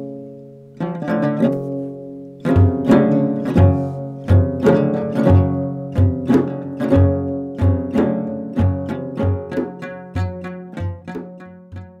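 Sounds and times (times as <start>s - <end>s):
plucked lute music: 0.0s - 12.0s.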